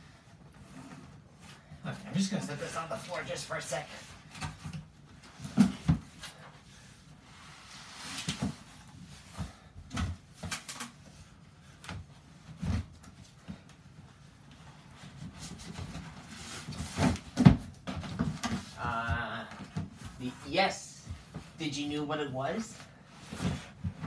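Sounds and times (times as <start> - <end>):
cardboard rustling and scraping: 0.3 - 21.6, 22.8 - 24.0.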